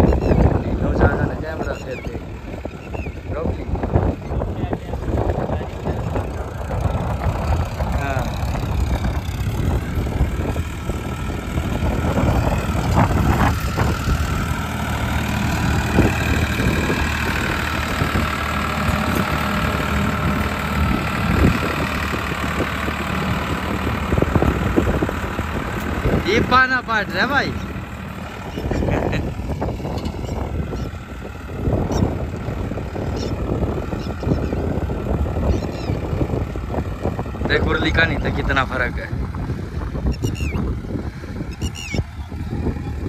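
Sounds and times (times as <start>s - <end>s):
tractor diesel engine running: 0.0s - 43.0s.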